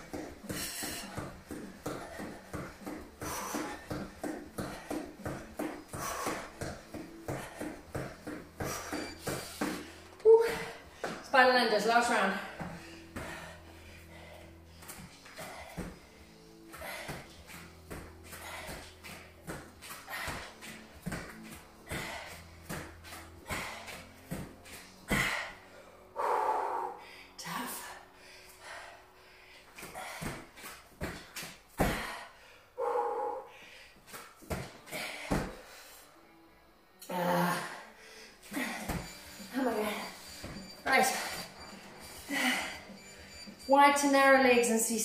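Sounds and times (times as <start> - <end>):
woman breathing hard: 0.0 - 11.2, 12.3 - 36.3, 37.1 - 43.6
woman grunting: 10.2 - 10.8, 37.1 - 37.8.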